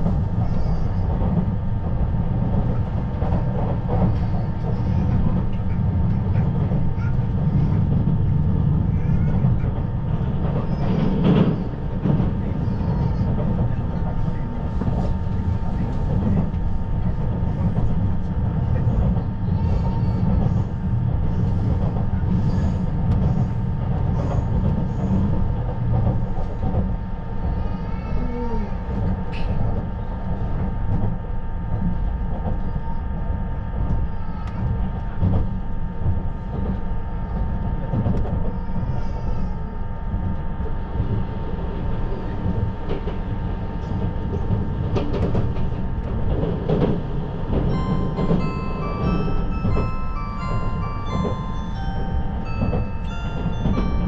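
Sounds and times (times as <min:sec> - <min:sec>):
train wheels rumbling on rail: 0:00.0 - 0:54.0
electronic chime melody: 0:47.7 - 0:54.0.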